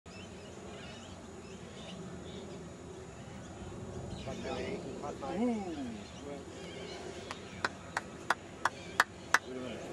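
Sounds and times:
person clapping: 7.6 - 9.5.

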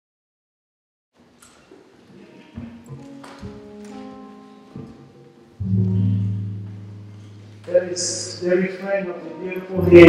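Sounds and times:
jazz band sustained notes: 5.1 - 10.0
loud low held note: 5.6 - 8.4.

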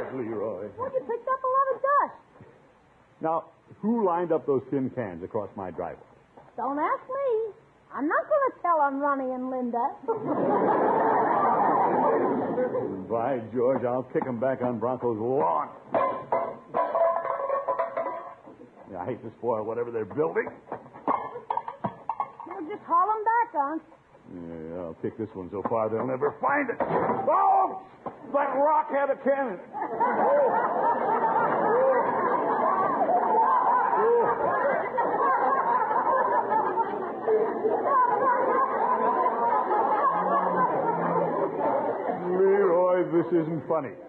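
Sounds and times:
studio audience laughing: 10.1 - 13.0, 29.6 - 42.7
tin cans clattering: 15.9 - 18.6, 20.1 - 22.8.

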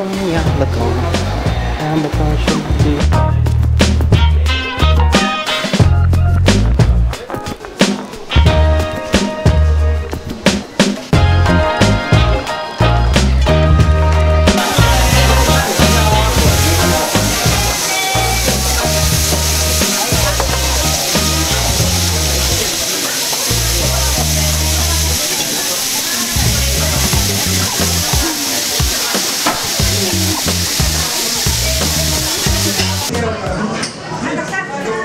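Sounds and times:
background music with bass line: 0.0 - 22.7, 23.5 - 25.2, 26.4 - 29.0, 29.6 - 33.3
sauce sizzling on hot plate: 14.6 - 33.1.

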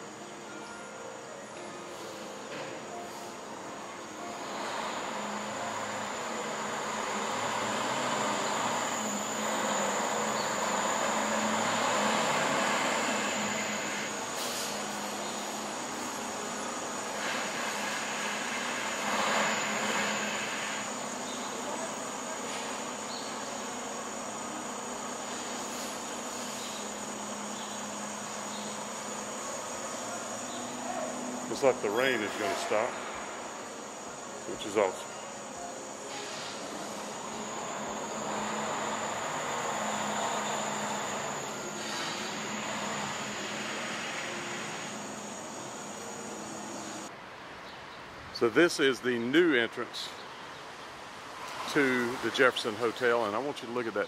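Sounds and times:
high-pitched whine: 0.0 - 47.1
diesel truck engine running: 4.5 - 16.1.

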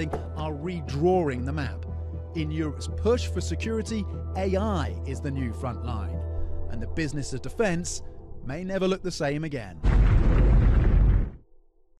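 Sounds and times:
explosion with low rumble: 9.8 - 11.4.

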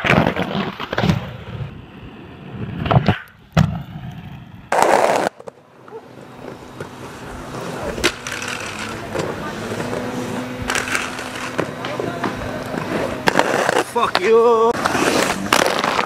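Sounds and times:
skate wheels rolling: 0.0 - 16.0
harsh scrape: 4.7 - 5.5, 7.0 - 16.0.

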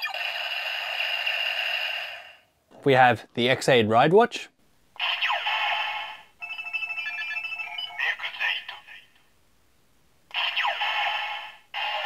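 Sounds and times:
toy electronic sound effect: 0.0 - 2.4, 5.0 - 6.2, 10.3 - 12.0
jingle of beeping tones: 6.4 - 8.2
toy voice calling: 10.3 - 12.0.

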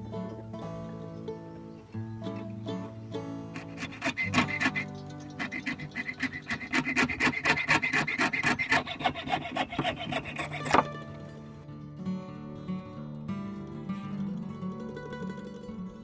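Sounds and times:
fret saw rasping: 3.4 - 11.6.

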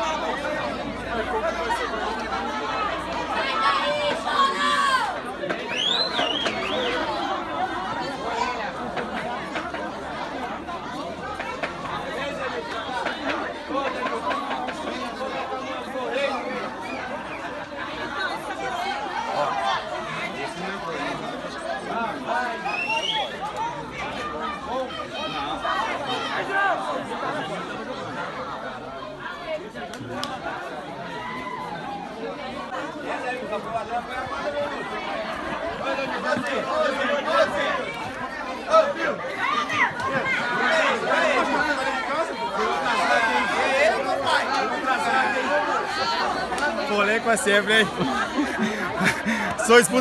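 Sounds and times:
men talking over one another: 0.0 - 50.0.

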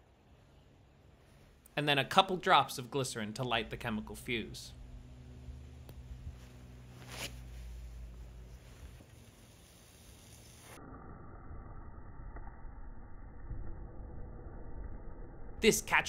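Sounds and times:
chemical reaction hissing and crackling: 7.5 - 10.8.

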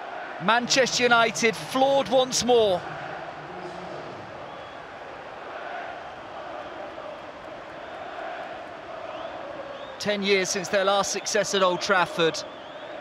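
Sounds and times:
stadium crowd hubbub: 0.0 - 13.0.

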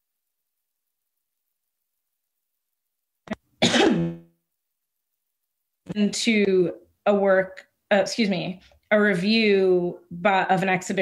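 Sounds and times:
woman coughing: 3.6 - 4.3.

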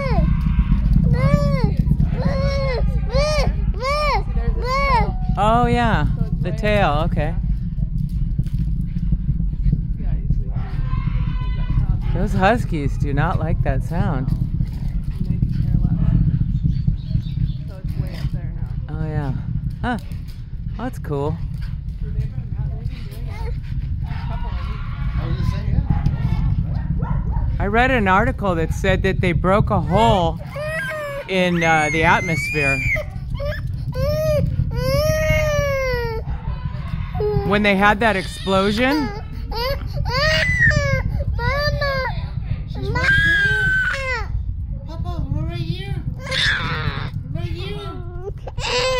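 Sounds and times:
huskies howling: 0.0 - 6.3, 10.5 - 13.4, 22.9 - 28.2, 29.4 - 44.4, 46.1 - 48.9
distant rocket launch rumble: 0.0 - 48.9.

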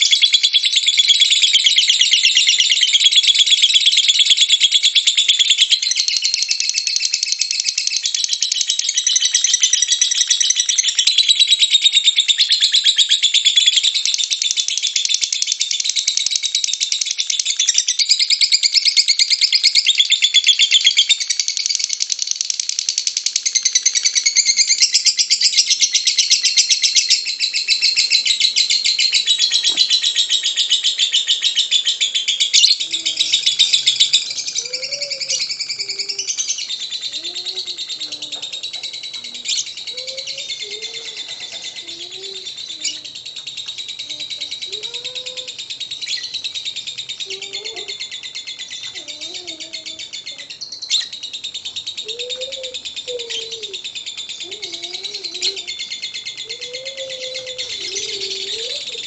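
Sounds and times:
lovebird chattering trills: 0.0 - 59.0.

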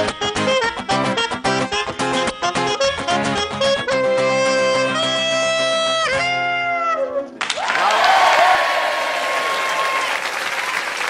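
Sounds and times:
melodica: 0.0 - 6.6
acoustic guitar: 0.0 - 7.4
saxophone: 0.0 - 7.4.

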